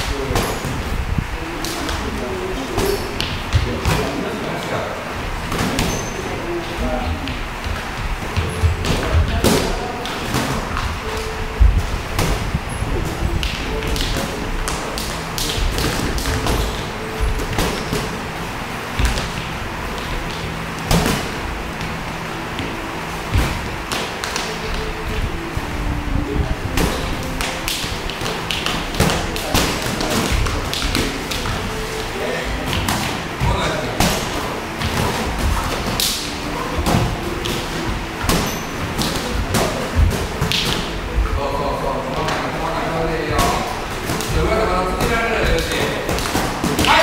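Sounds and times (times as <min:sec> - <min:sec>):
feet moving on canvas: 0:00.0 - 0:42.6.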